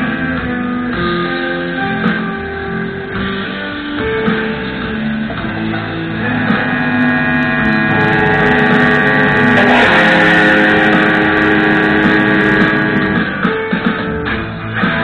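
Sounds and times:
electric guitar drone: 0.0s - 15.0s
amplifier mains hum: 5.0s - 13.5s
guitar plucks and knocks: 5.3s - 13.4s.

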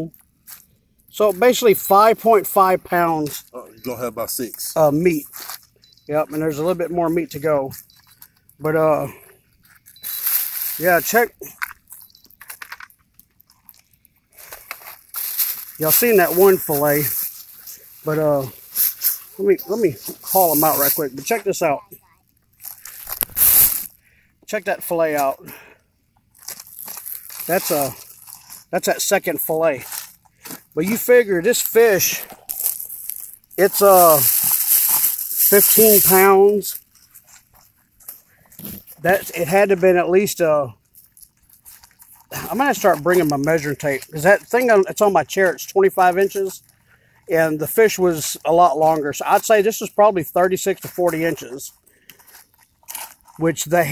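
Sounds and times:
plastic bag rustling: 9.6s - 11.2s, 11.8s - 21.4s, 22.5s - 24.0s, 26.3s - 29.1s, 29.8s - 39.0s
handling rustles and taps: 11.5s - 16.4s.

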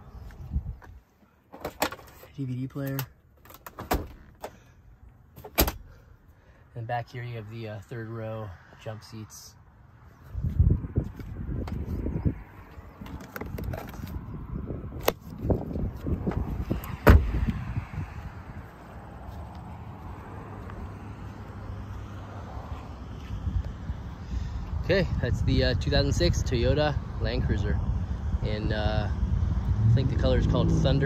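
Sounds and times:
car door slamming: 5.4s - 6.0s, 16.9s - 17.4s.

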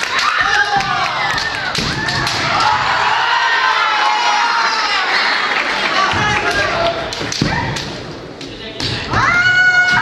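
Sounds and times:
people shouting: 0.0s - 5.3s, 9.0s - 10.0s.

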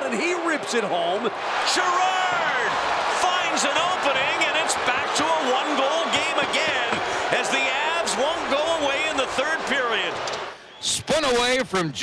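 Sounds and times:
man talking: 0.0s - 10.2s, 10.8s - 12.0s.

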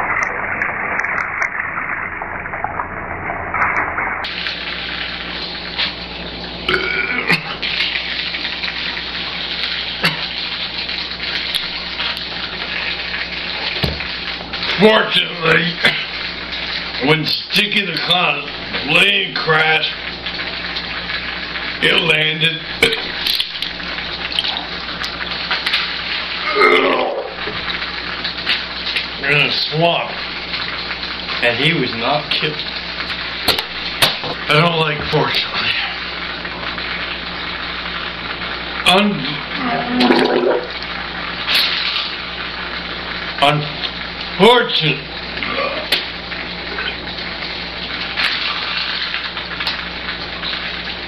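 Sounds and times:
person retching: 6.7s - 7.7s, 10.0s - 10.3s, 22.8s - 23.5s, 26.4s - 27.6s, 39.6s - 40.8s, 45.4s - 46.1s
man vomiting liquid: 6.7s - 7.9s, 10.0s - 10.4s, 15.8s - 16.2s, 22.7s - 23.4s, 26.3s - 27.6s, 35.4s - 36.1s, 39.3s - 40.8s, 45.4s - 47.1s
liquid splashing onto table: 13.7s - 14.2s.

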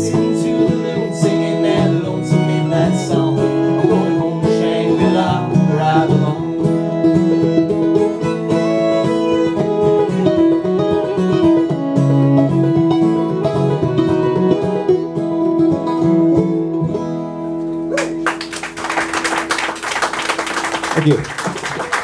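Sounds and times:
bowed fiddle melody: 0.0s - 17.5s
strummed acoustic guitar: 0.0s - 18.2s
upright bass: 0.0s - 18.6s
resonator guitar: 0.0s - 22.0s.

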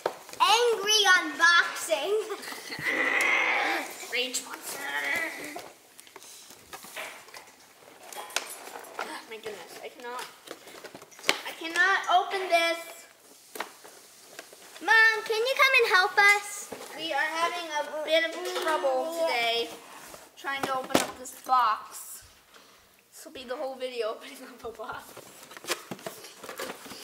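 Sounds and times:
girl's voice: 0.4s - 2.9s, 11.5s - 13.1s, 14.8s - 19.8s, 23.2s - 25.1s.

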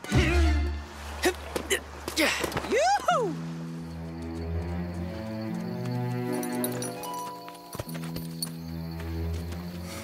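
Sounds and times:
background music with held notes: 0.0s - 1.0s, 3.3s - 10.0s.

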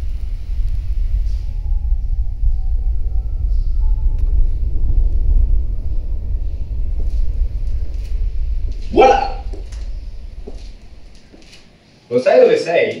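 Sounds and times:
deep low rumble: 0.0s - 12.0s
short loud pitched cry: 8.9s - 9.5s.

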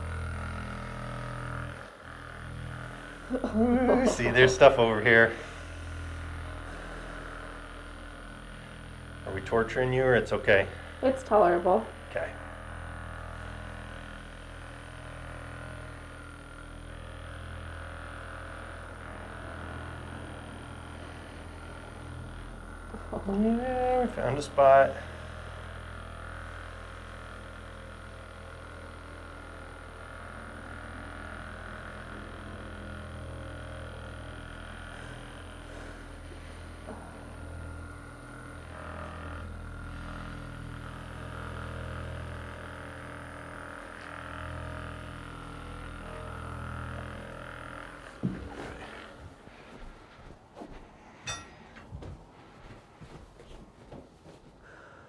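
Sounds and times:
massage gun motor hum: 0.0s - 55.0s.

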